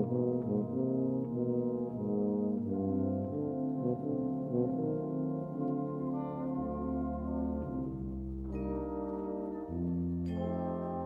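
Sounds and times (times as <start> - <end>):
brass band with tuba: 0.0 - 11.0.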